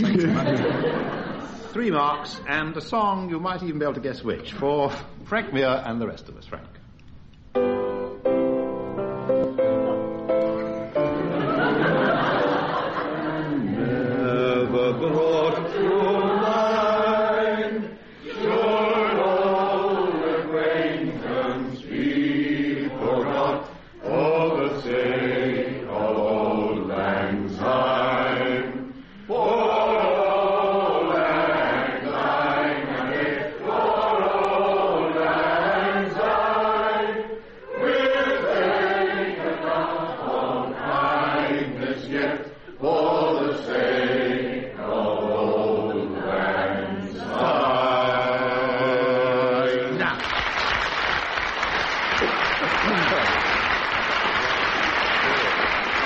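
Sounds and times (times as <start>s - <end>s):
men singing together: 11.5s - 50.2s.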